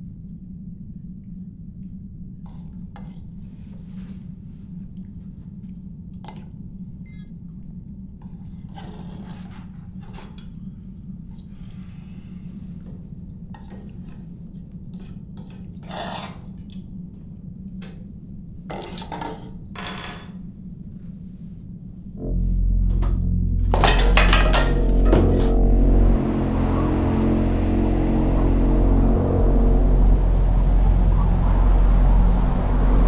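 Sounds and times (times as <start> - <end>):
steady low hum: 0.0 - 33.0.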